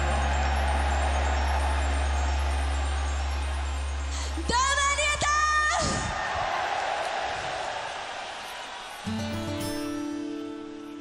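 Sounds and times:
concert audience cheering: 0:00.0 - 0:11.0.

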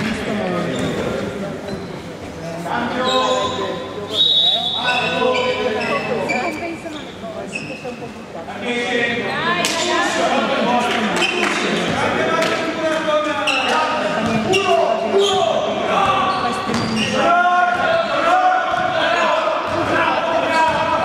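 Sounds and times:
basketball bouncing on gym floor: 0:16.0 - 0:17.0.

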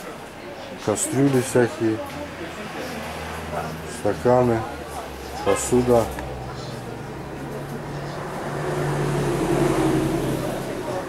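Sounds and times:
faint voices: 0:00.0 - 0:11.0
low engine-like hum: 0:02.2 - 0:11.0.

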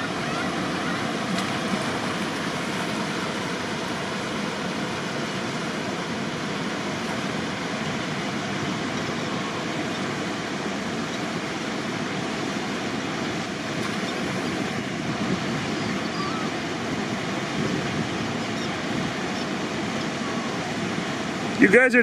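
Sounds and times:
turbulent river water rushing: 0:00.0 - 0:22.0.

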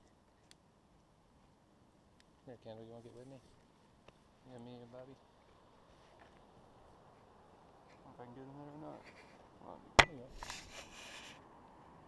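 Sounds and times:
cloth rubbing on microphone: 0:10.3 - 0:11.4.

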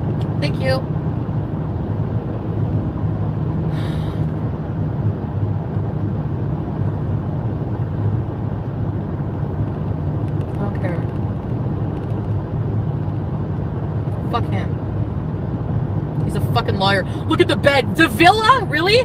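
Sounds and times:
car engine and road rumble: 0:00.0 - 0:19.0.

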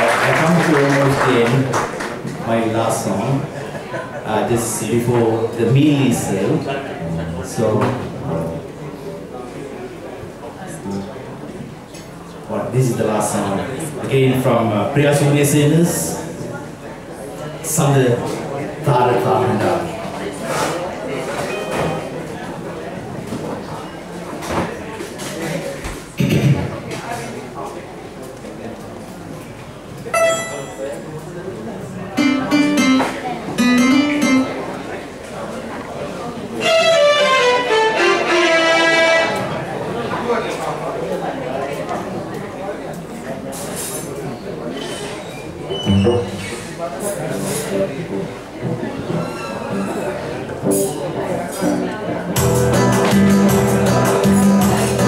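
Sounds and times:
electronic keyboard accompaniment: 0:30.1 - 0:31.1, 0:32.2 - 0:35.0, 0:51.6 - 0:55.0.

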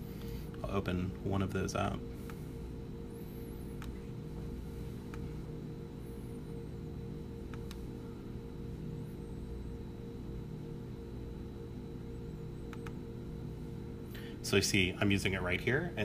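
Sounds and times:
low electrical hum: 0:00.0 - 0:16.0
faint computer mouse clicks: 0:03.8 - 0:04.0, 0:07.5 - 0:07.8, 0:12.7 - 0:13.0.

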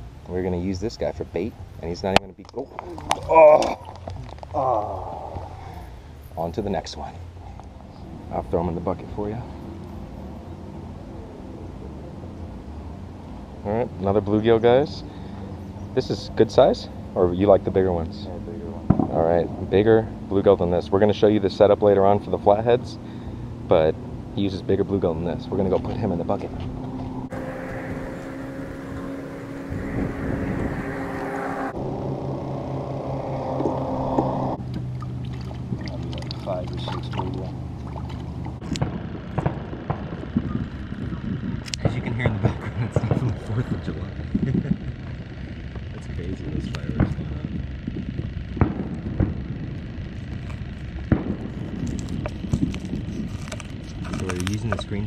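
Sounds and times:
steady motor hum: 0:01.4 - 0:55.0.

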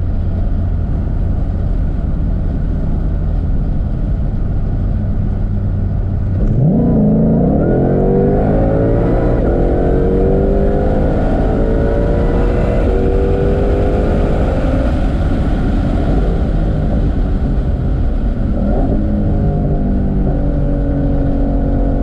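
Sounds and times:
car engine at full throttle: 0:00.0 - 0:22.0.

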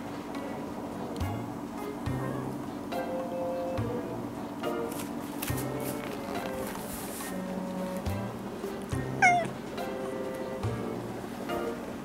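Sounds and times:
gentle background music: 0:00.0 - 0:12.0
cat meowing: 0:09.2 - 0:09.6.

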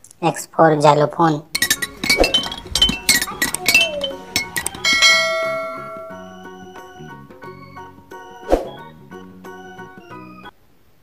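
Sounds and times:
toy xylophone notes: 0:01.6 - 0:06.6.

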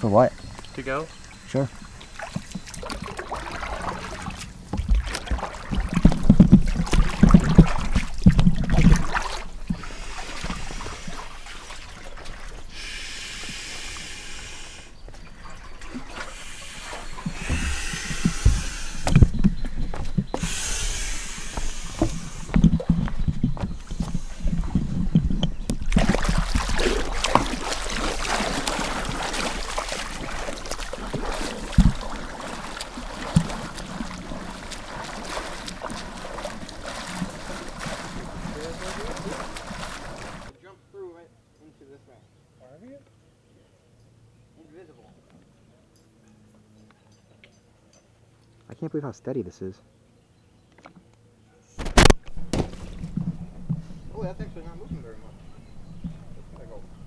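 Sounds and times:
water splashing and sloshing: 0:00.0 - 0:40.6, 0:51.8 - 0:57.0
bumps on microphone: 0:17.2 - 0:26.0.

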